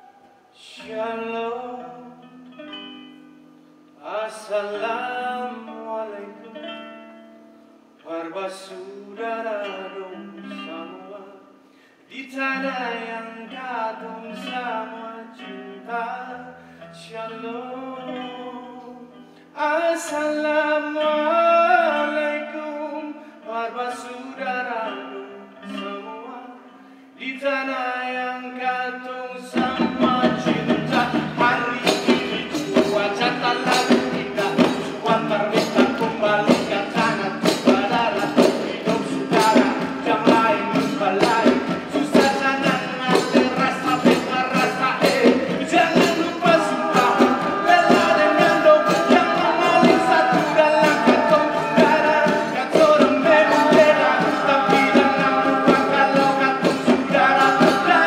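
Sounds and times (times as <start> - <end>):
person singing: 12.1 - 58.0
fast drumming: 29.6 - 58.0.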